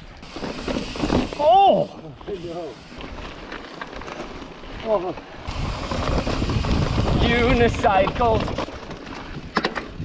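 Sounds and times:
bike rattling: 0.0 - 10.0
bike tyres rolling over dirt: 0.0 - 10.0
wind buffeting microphone: 5.4 - 10.0.

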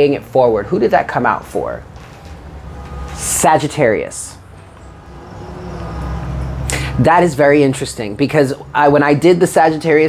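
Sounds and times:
sharp intake of breath: 6.6 - 7.0.

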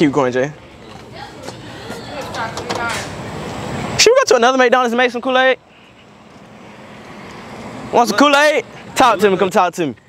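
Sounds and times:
car driving past: 5.6 - 9.0.

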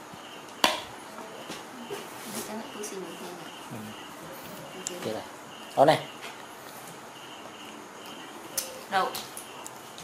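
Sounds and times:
faint insect chirping: 0.0 - 10.0.

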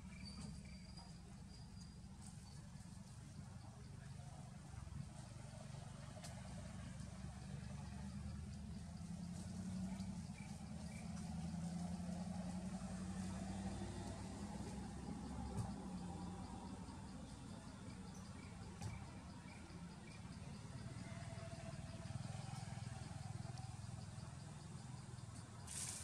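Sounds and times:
low engine hum: 0.0 - 26.0
insects ticking: 4.0 - 26.0.

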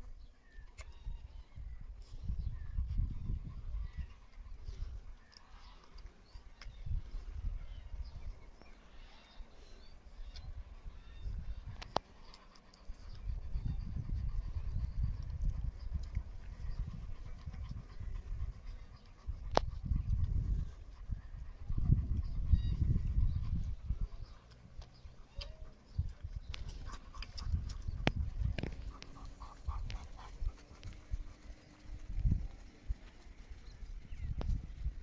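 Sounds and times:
wind rumbling on microphone: 0.0 - 8.8, 10.0 - 12.2, 12.8 - 35.0.

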